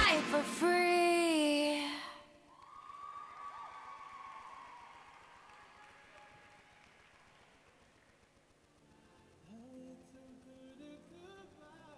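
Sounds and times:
audience applause and cheering: 0:00.0 - 0:01.1, 0:02.4 - 0:08.9
pop song held sung note: 0:09.4 - 0:11.9.

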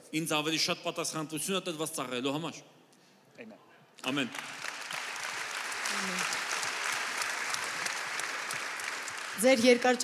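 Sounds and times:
audience applauding: 0:04.0 - 0:10.0.

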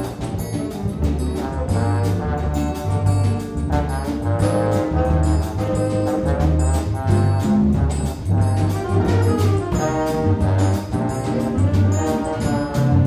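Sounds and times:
jazz big band playing: 0:00.0 - 0:13.0
trombone melody: 0:00.0 - 0:13.0.

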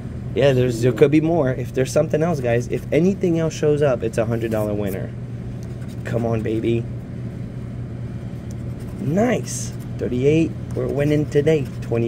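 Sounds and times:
steady low hum: 0:00.0 - 0:12.0
scratch-off ticket being scraped: 0:05.7 - 0:06.7, 0:08.5 - 0:10.0, 0:10.7 - 0:12.0.

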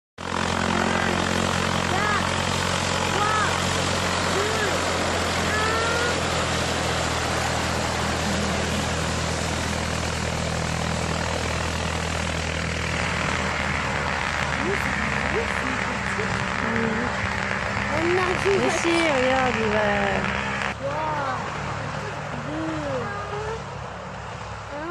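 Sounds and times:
constant rushing noise: 0:00.2 - 0:24.9
propeller aeroplane engine droning: 0:00.2 - 0:24.9.

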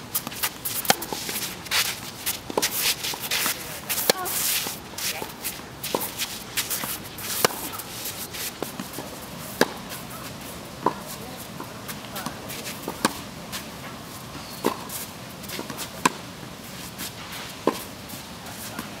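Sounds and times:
racket hitting tennis ball: 0:00.1 - 0:13.9, 0:14.6 - 0:17.9
shoes sliding on clay: 0:00.1 - 0:19.0.

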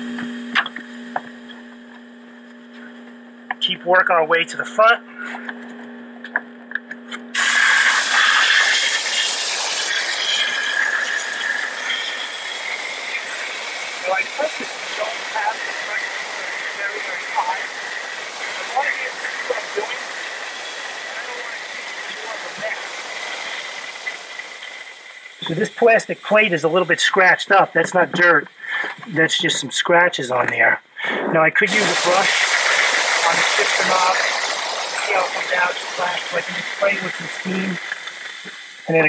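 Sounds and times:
steam cleaner hissing: 0:07.3 - 0:29.7, 0:31.0 - 0:39.0.

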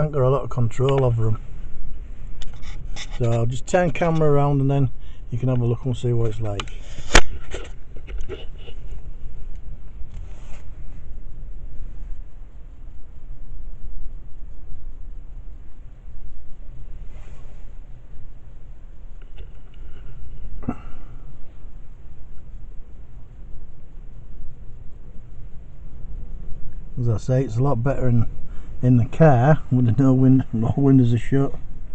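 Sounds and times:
gusty wind buffeting microphone: 0:00.0 - 0:31.9
faint scrapes: 0:01.2 - 0:03.6, 0:10.1 - 0:11.1, 0:17.0 - 0:17.8.

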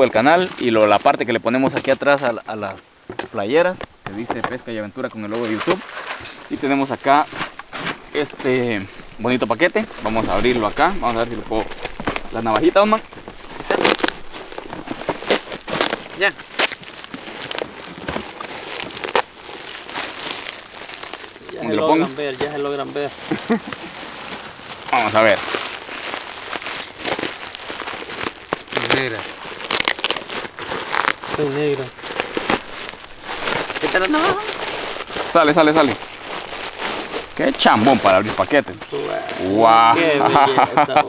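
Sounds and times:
plastic bag crinkling and tearing: 0:00.0 - 0:01.2, 0:05.2 - 0:39.8.

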